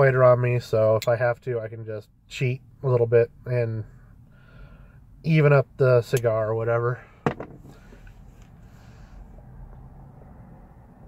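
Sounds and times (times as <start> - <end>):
car interior background noise: 0.0 - 11.0.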